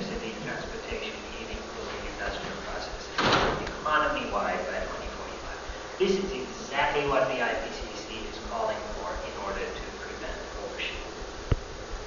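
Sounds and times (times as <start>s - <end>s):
person speaking in a room: 0.0s - 12.0s.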